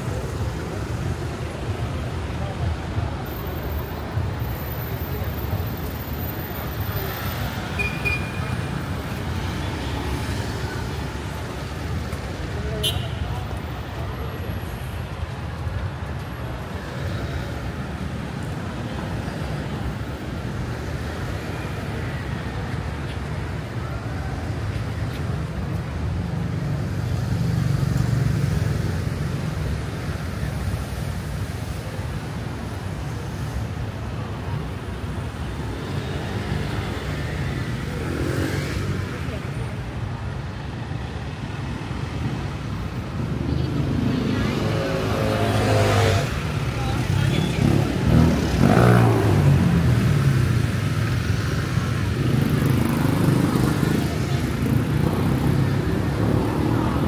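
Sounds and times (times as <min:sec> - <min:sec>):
cars and motorbikes passing: 0:00.0 - 0:57.0
traffic engine rumble: 0:00.0 - 0:57.0.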